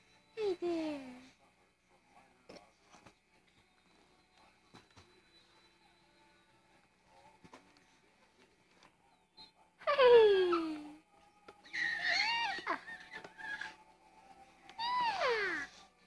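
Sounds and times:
infant squealing with delight: 0:11.6 - 0:13.8, 0:14.8 - 0:15.7.

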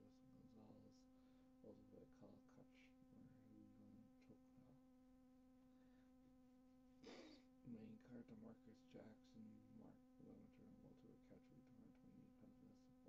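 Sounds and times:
faint steady buzz: 0:00.0 - 0:13.0
breathy noise: 0:07.0 - 0:07.4.

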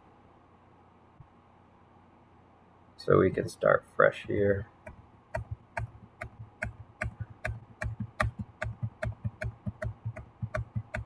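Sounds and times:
mouse or keyboard clicks: 0:04.9 - 0:11.0.

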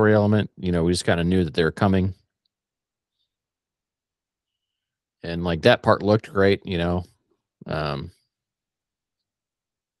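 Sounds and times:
man's voice: 0:00.0 - 0:02.2, 0:05.2 - 0:07.0, 0:07.6 - 0:08.1.

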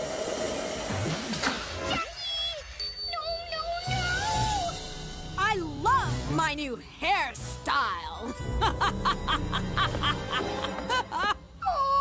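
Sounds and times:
background music: 0:03.0 - 0:12.0
cartoon woman's gloating laugh: 0:08.6 - 0:11.6.

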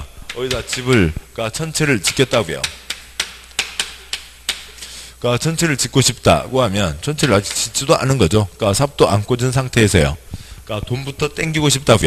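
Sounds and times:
chalk tapping on chalkboard: 0:00.3 - 0:01.2, 0:02.1 - 0:04.8, 0:07.2 - 0:07.7.

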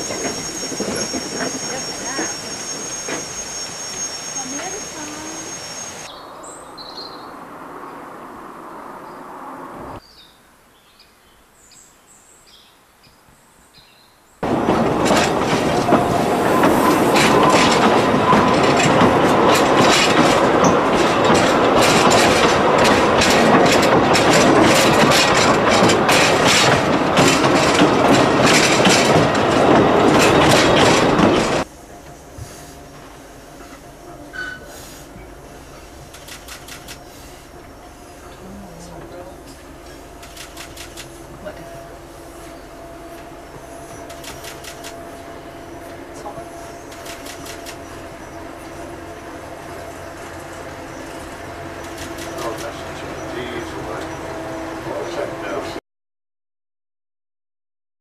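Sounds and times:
wheels clicking on rails: 0:00.0 - 0:05.4, 0:14.4 - 0:32.2, 0:33.6 - 0:42.0, 0:43.0 - 0:55.8
train running on track: 0:00.0 - 0:10.0, 0:14.4 - 0:55.8.

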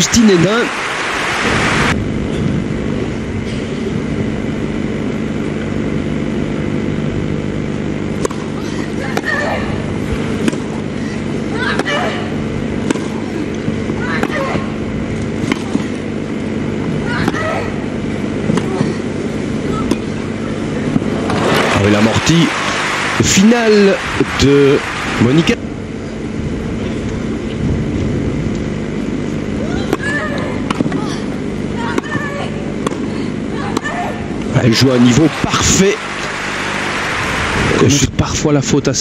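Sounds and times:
crowd hum: 0:00.0 - 0:04.6, 0:08.2 - 0:28.1, 0:28.9 - 0:38.5
racket striking tennis ball: 0:08.2 - 0:08.5, 0:10.4 - 0:10.8, 0:12.8 - 0:13.2, 0:15.4 - 0:16.0
applause: 0:21.3 - 0:25.5, 0:34.9 - 0:37.9.

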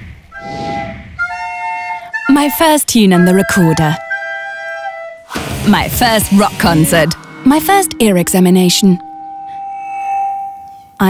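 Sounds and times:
steady pure tone: 0:05.4 - 0:11.0.

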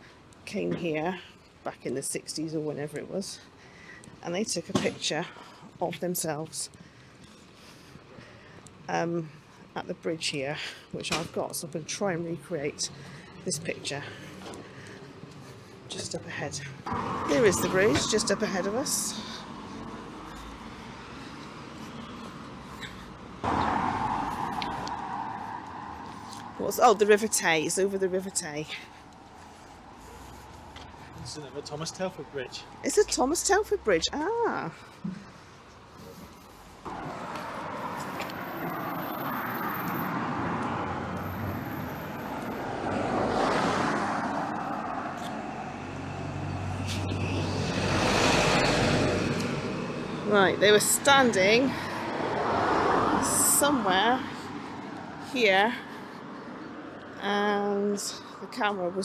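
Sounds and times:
traffic hum: 0:00.0 - 0:59.0
cars driving past: 0:12.7 - 0:34.7, 0:35.8 - 0:59.0
car rushing past: 0:16.9 - 0:18.4, 0:23.4 - 0:26.1, 0:36.9 - 0:50.1.

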